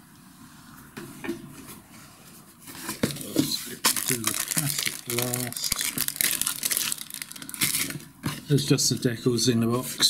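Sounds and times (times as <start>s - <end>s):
cardboard box and paper rustling: 2.7s - 8.0s.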